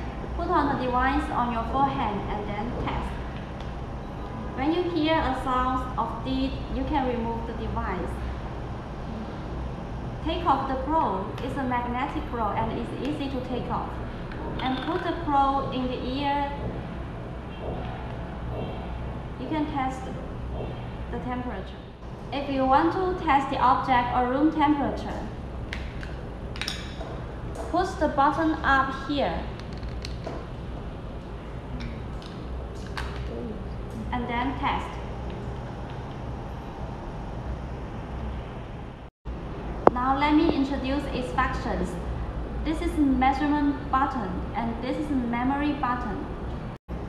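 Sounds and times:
low background hum: 0.0 - 47.0.

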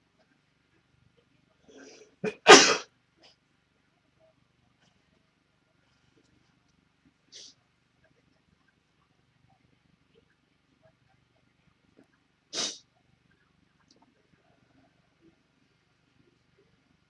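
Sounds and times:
person sneezing: 1.8 - 2.8, 12.6 - 12.8.

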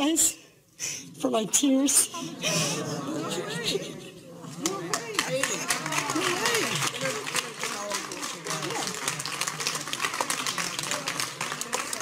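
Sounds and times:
crowd applauding: 4.6 - 12.0.

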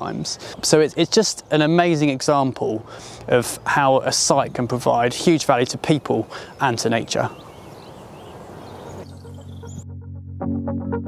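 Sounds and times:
faint bird chirps: 6.4 - 9.8
soft synthesizer music: 9.0 - 11.0.

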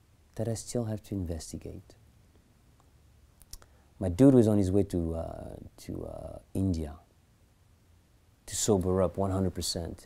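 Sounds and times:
faint short clicks: 2.3 - 3.7.

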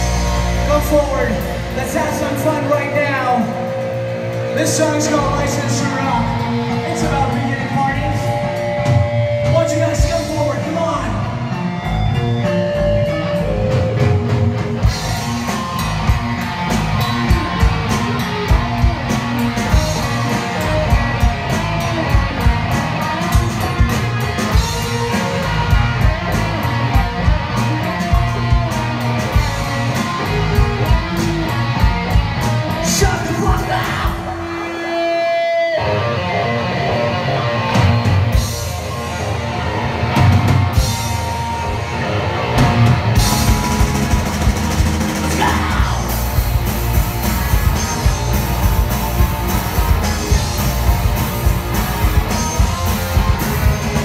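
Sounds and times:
drum kit: 0.0 - 35.6, 37.5 - 54.0
bass guitar: 0.0 - 54.0
electric guitars: 0.0 - 54.0.

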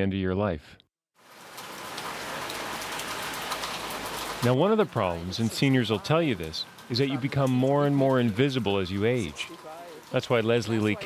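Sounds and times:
rain falling on wet pavement: 1.2 - 11.0.

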